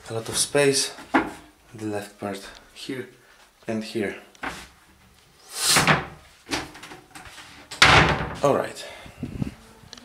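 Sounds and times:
wardrobe door clacking shut: 7.8 - 8.4.

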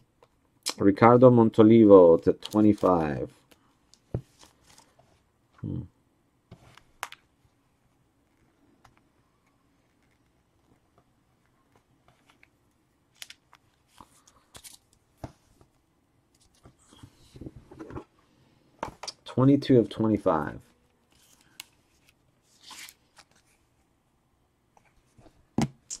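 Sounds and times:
trading cards and sleeves rustling: 2.2 - 5.0, 20.4 - 23.8.

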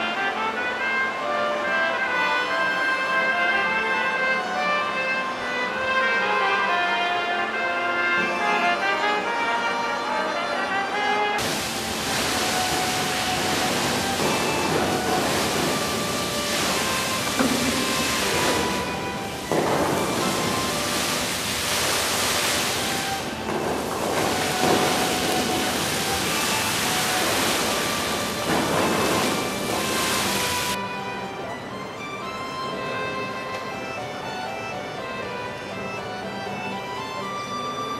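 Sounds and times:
geyser water spray rushing: 11.4 - 30.8.

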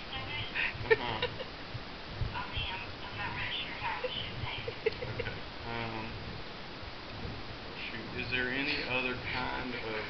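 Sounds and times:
low background noise: 0.0 - 10.0
person murmuring mm: 0.7 - 1.4, 4.7 - 6.2.

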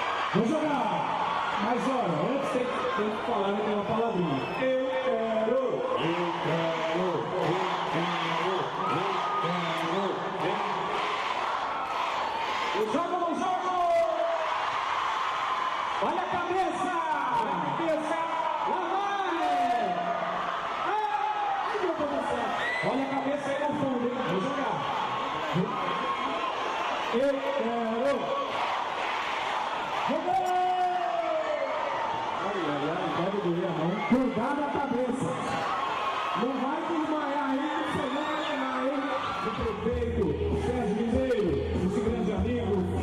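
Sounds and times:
crowd noise: 0.0 - 43.0
crowd shouts: 0.0 - 43.0.

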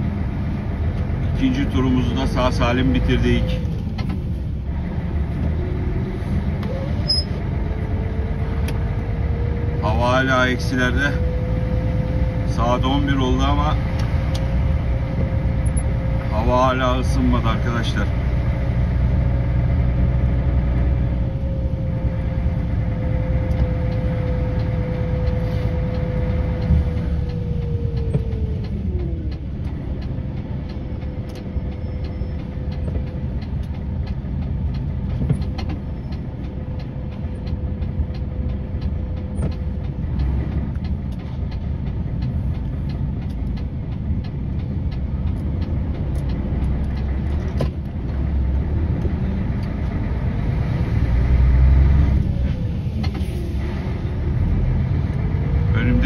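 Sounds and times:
diesel engine low hum: 0.0 - 56.0.

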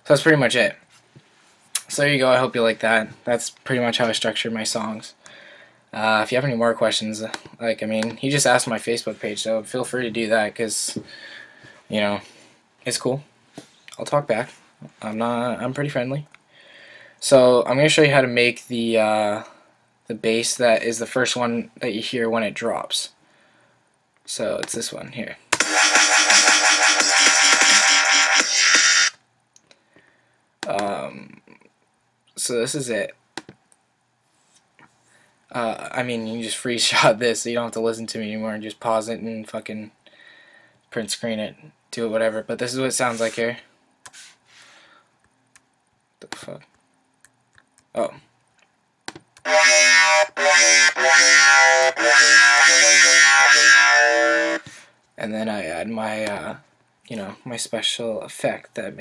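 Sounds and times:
dubstep synth bass and drums: 25.6 - 29.1.

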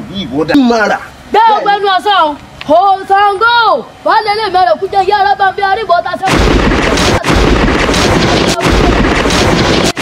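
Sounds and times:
crackling thunder rumble: 6.4 - 10.0.

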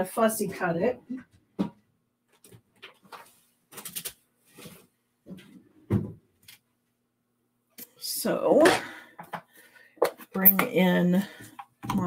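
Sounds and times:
paper rustling: 2.4 - 4.9.

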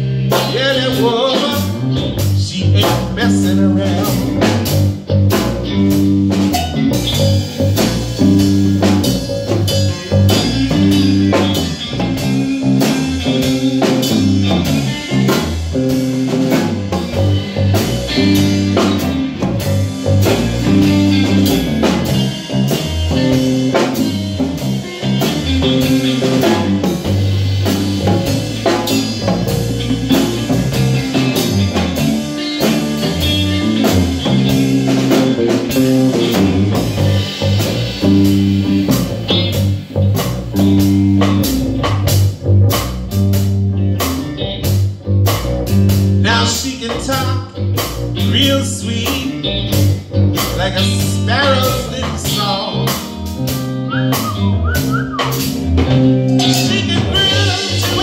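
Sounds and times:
drum kit steady beat: 0.0 - 58.0
electric guitar: 0.0 - 58.0
low bass line: 0.0 - 58.0.

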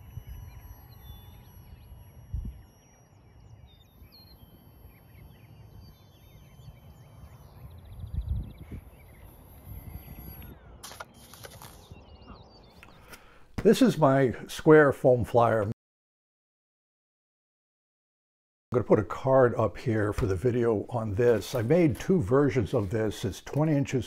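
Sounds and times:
small birds chirping: 0.0 - 14.3
wind rumbling over microphone: 7.8 - 10.6.

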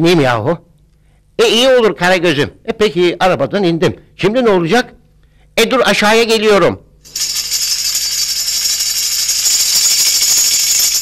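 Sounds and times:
percussion rattle shaken: 7.0 - 11.0.

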